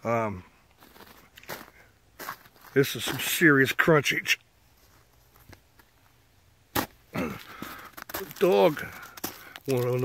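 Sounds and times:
faint crackles of snow crust: 0.2 - 6.2, 6.8 - 10.0
sharp crunch of snow crust: 0.8 - 3.9, 6.7 - 10.0.

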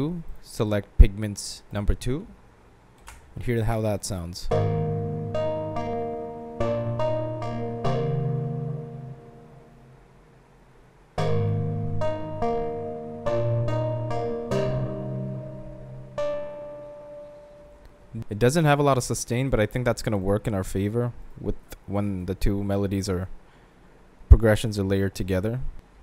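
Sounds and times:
electric piano chords: 4.5 - 10.2, 11.2 - 18.3.

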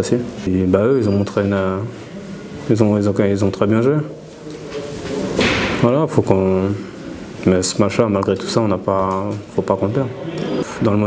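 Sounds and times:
man speaking: 0.0 - 4.4, 5.8 - 11.0.

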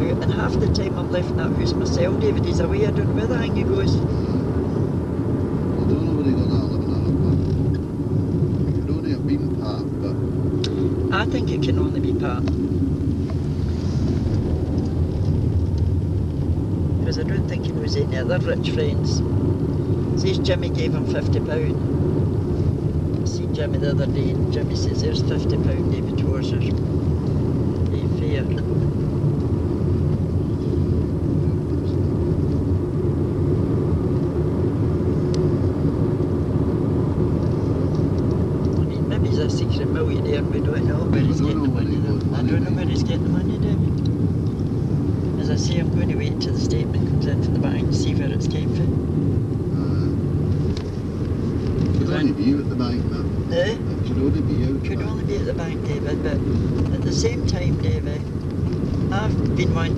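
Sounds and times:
car engine and road noise: 0.0 - 59.9
muffled talk: 5.8 - 7.5, 8.7 - 10.2, 38.8 - 44.0, 49.7 - 50.2, 51.9 - 58.2.

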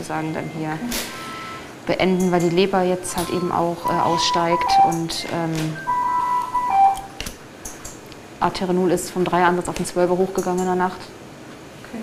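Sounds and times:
ventilator alarm beeping: 0.0 - 7.2.

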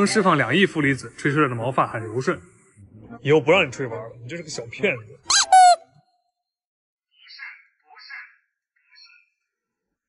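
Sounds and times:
cat meowing: 5.3 - 5.8.

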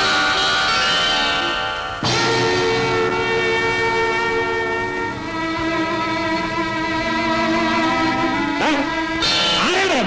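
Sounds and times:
sustained film music chord: 1.4 - 9.5.

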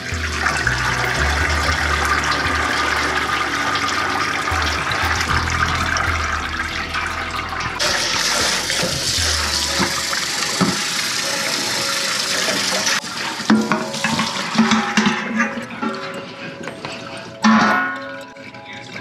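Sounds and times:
tap water running into pot: 7.3 - 15.6.

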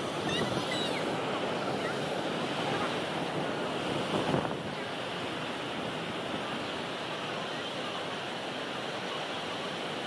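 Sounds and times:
waterfall rushing: 0.0 - 10.0.

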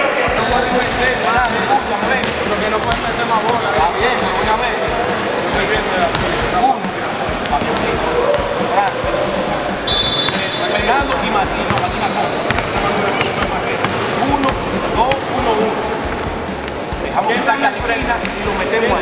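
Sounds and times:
murmur of voices: 0.0 - 19.0
basketball bouncing: 0.8 - 9.0, 9.9 - 15.4
sneaker squeaks on court: 9.9 - 15.3.

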